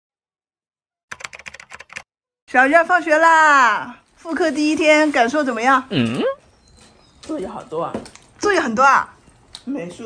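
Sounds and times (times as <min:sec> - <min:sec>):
keyboard typing clicks: 0:01.1 - 0:02.1.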